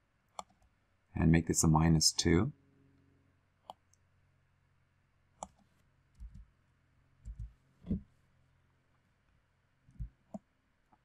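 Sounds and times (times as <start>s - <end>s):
computer mouse and keyboard clicks: 0.4s - 0.6s, 5.4s - 5.6s, 7.2s - 8.0s
soft low thumps: 7.2s - 8.1s.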